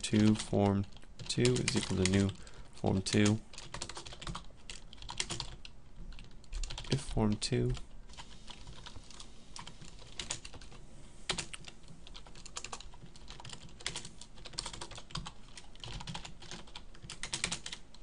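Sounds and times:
computer keyboard typing: 0.0 - 7.0, 8.1 - 18.0.

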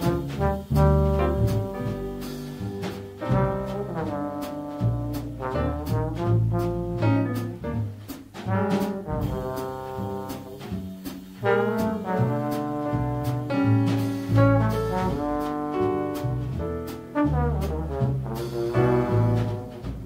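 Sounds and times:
acoustic piano: 0.0 - 20.0
drum kit with cymbals: 0.0 - 20.0
trombone melody: 0.0 - 20.0
upright bass: 0.0 - 20.0.

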